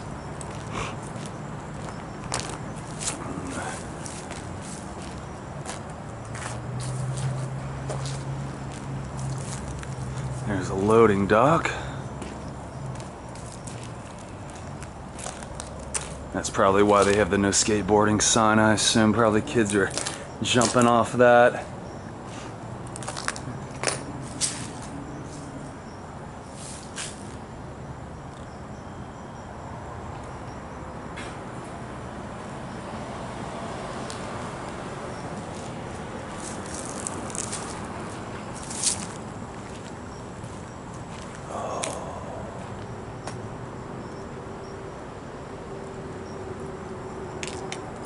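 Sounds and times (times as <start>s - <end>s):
footsteps crunching on pavement: 0.0s - 17.8s, 18.9s - 21.6s, 22.2s - 25.5s, 34.0s - 43.4s, 47.4s - 47.9s
steady low hum: 34.5s - 48.0s.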